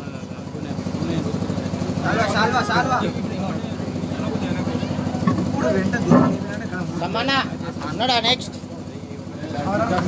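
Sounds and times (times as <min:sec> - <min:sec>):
engine idling: 0:00.0 - 0:10.0
scattered voices: 0:00.0 - 0:10.0.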